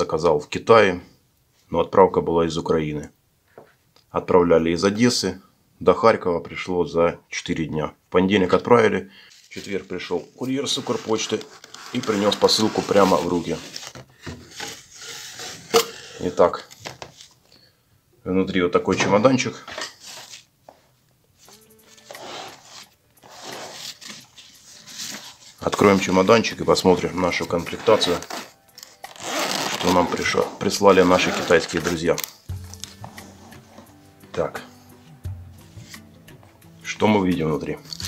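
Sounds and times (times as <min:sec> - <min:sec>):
quiet background music: 0:04.2 - 0:16.9, 0:18.2 - 0:38.0
fabric case scraping cardboard: 0:09.6 - 0:17.3, 0:21.9 - 0:32.3.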